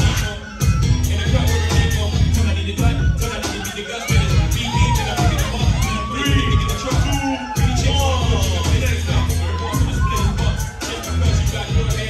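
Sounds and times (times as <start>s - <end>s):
crowd cheering and shouting: 0.0s - 12.0s
hip-hop music with heavy bass: 0.0s - 12.0s.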